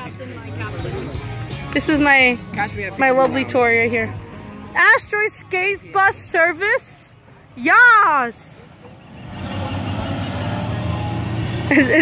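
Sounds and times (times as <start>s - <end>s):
faint background chatter: 0.0s - 11.3s
large vehicle engine rumble: 0.0s - 12.0s.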